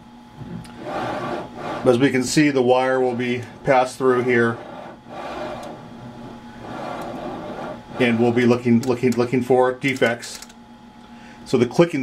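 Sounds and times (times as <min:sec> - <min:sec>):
wire rubbing through rollers: 0:00.7 - 0:02.4, 0:03.0 - 0:08.9.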